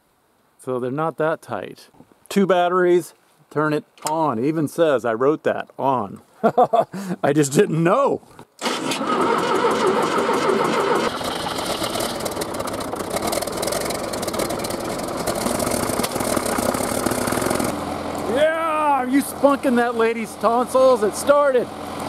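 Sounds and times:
man's voice: 0:07.2 - 0:08.2, 0:18.3 - 0:21.7
diesel engine running: 0:08.6 - 0:22.0.

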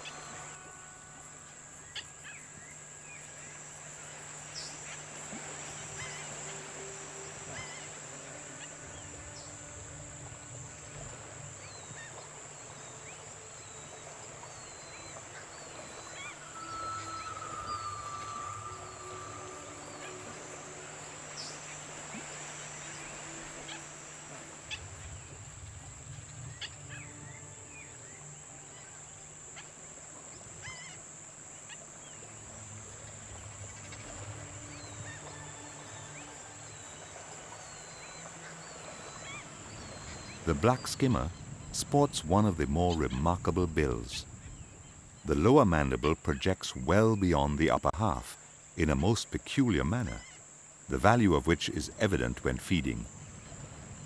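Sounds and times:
long bird call: 0:00.0 - 0:31.0, 0:31.6 - 0:54.0
insect drone: 0:00.0 - 0:54.0
bird chirps: 0:11.6 - 0:23.9
falling whistles: 0:14.6 - 0:22.3.

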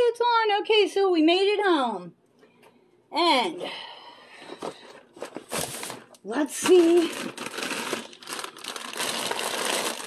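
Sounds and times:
shopping bag rustling and crinkling: 0:05.1 - 0:10.0.

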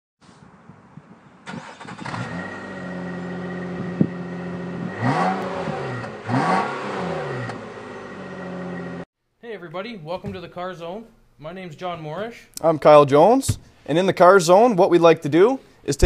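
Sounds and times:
car engine idling and revving: 0:01.6 - 0:09.1.

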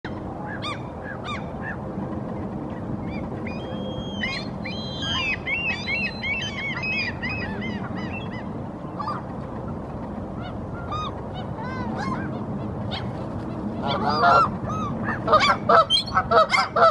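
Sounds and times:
birds calling: 0:00.1 - 0:16.9.

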